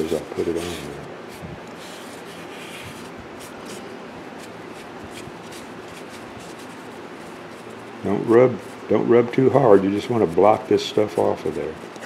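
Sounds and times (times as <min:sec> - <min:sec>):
paper towel rubbing on wood: 0:00.0 - 0:08.9, 0:09.8 - 0:12.0.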